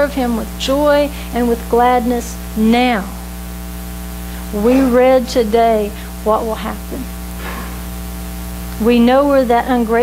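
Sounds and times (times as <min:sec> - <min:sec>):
woman speaking: 0:00.0 - 0:03.3, 0:04.4 - 0:07.2, 0:08.8 - 0:10.0
electrical mains hum: 0:00.0 - 0:10.0.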